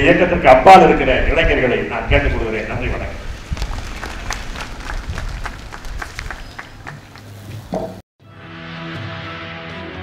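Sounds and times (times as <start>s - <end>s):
audience applauding: 3.5s - 7.4s.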